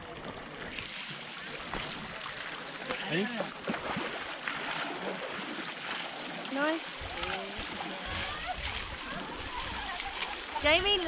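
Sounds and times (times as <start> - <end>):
water splashing and pouring: 0.0 - 11.0
people talking: 6.5 - 11.0.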